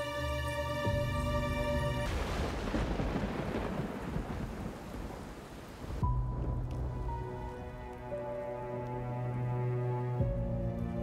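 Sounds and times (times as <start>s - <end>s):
music with held tones: 0.0s - 2.1s, 6.0s - 11.0s
heavy rain: 0.0s - 11.0s
thunderclap: 1.0s - 7.8s.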